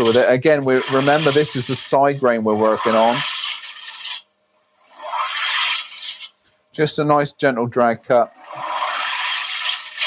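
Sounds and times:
lathe gouge shaving hiss: 0.0s - 4.2s, 5.0s - 6.4s, 8.3s - 10.0s.

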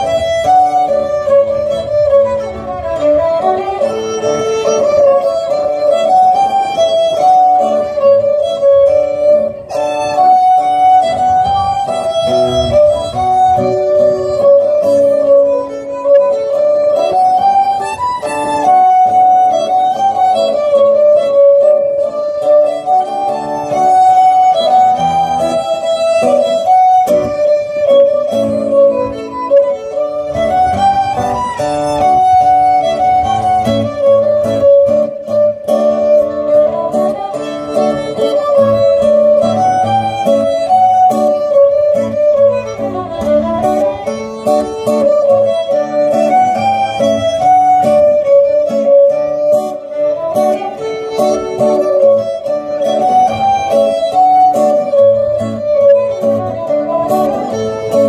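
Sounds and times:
strummed acoustic guitar: 0.0s - 58.0s
violins playing melody: 0.0s - 58.0s.

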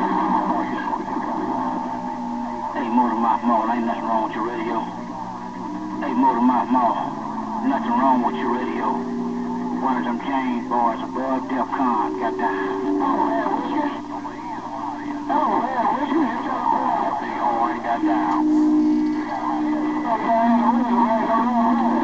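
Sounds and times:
garbled radio voices: 0.0s - 22.0s
low whistling radio tones: 0.0s - 22.0s.

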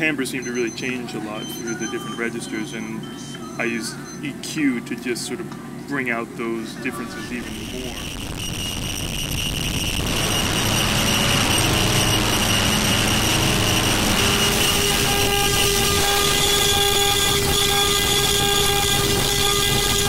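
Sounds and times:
sustained synth tones: 0.0s - 4.4s, 6.8s - 20.0s
distorted synthesizer noise wash: 6.9s - 20.0s.

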